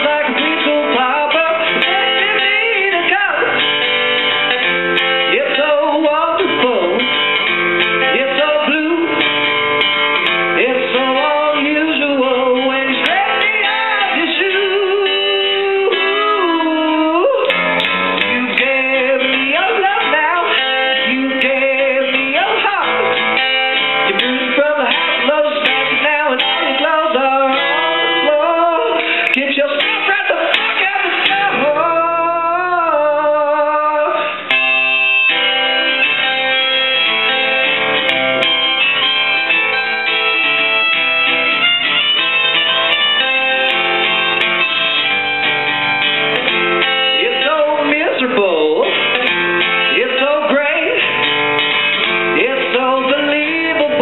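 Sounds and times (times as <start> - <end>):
man singing a pop song: 0.0 - 3.8, 4.6 - 7.4, 8.0 - 9.4, 10.3 - 34.5, 47.0 - 51.2, 52.0 - 54.0
acoustic guitar strumming: 0.0 - 54.0.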